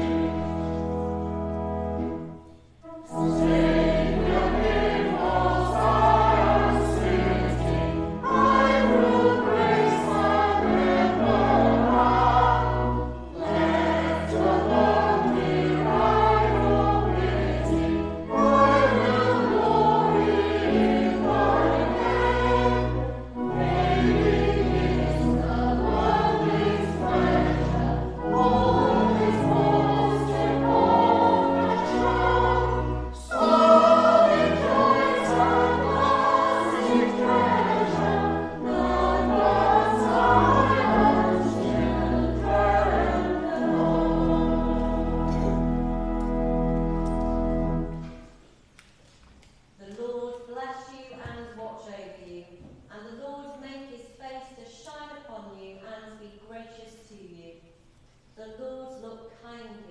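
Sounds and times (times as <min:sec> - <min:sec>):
choir singing in parts: 0:00.0 - 0:48.0
low held organ notes: 0:00.0 - 0:48.3.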